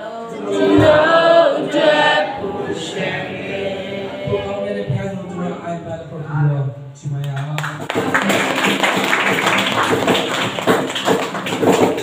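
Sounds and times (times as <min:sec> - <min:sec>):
hand clapping: 0:07.2 - 0:12.0
strummed acoustic guitars: 0:07.8 - 0:12.0.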